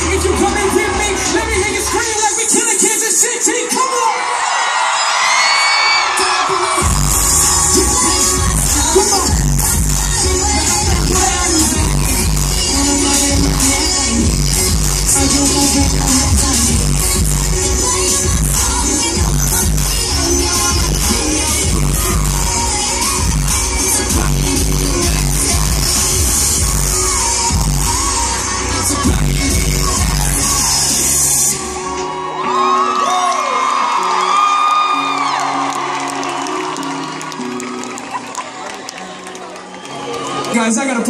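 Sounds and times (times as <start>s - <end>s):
rap beat over loudspeakers: 0.0s - 4.2s, 6.1s - 31.9s
crowd screaming and cheering: 0.0s - 41.0s.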